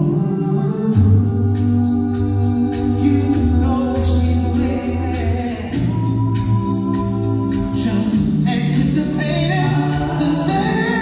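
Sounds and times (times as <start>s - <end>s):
male a cappella group singing: 0.0s - 11.0s.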